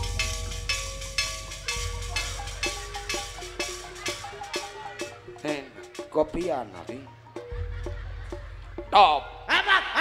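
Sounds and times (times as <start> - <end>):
low bass pulse: 0.0 - 3.1
cymbal strokes: 0.0 - 6.1
held melodic notes: 0.0 - 8.9
hand drums: 0.0 - 9.2.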